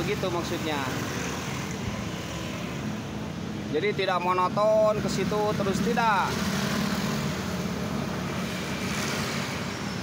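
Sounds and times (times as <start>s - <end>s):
passing vehicle engine: 4.8s - 10.0s.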